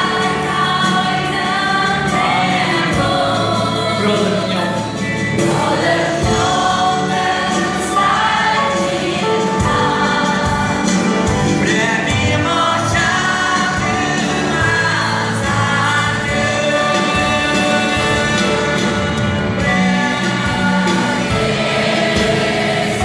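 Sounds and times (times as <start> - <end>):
large choir singing: 0.0 - 23.0
live band with steady beat: 0.0 - 23.0.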